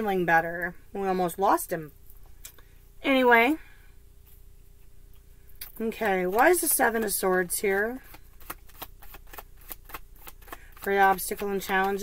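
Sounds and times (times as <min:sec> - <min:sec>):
cards being shuffled: 0:05.9 - 0:12.0.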